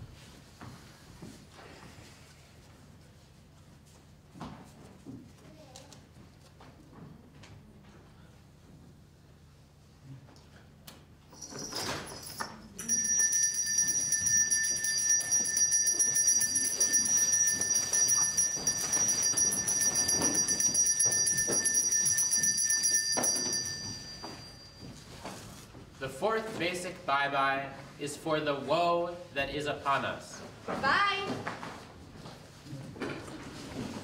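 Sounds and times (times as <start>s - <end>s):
brass handbell ringing: 11.3s - 25.0s.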